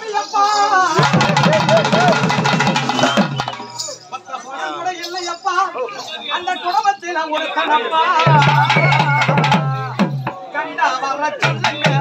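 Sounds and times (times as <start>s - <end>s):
fast folk drumming: 0.8s - 3.7s, 8.2s - 10.5s, 11.3s - 12.0s.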